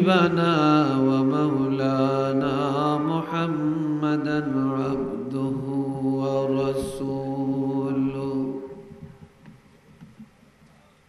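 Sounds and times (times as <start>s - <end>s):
man chanting through microphones: 0.0s - 8.8s.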